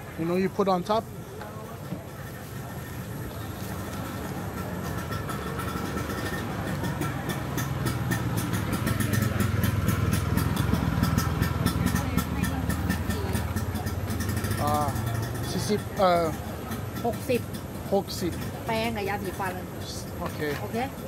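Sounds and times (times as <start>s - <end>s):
engine rumbling: 0.0s - 21.0s.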